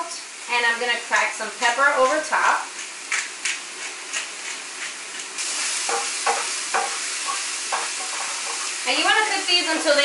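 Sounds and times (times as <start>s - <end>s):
vegetables sizzling in oil: 0.0s - 10.0s
wooden spoon scraping pan: 2.0s - 8.8s.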